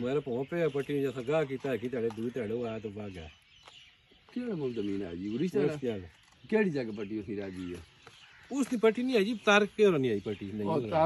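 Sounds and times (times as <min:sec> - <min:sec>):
man talking: 0:00.0 - 0:03.3, 0:04.3 - 0:07.9, 0:08.5 - 0:11.0.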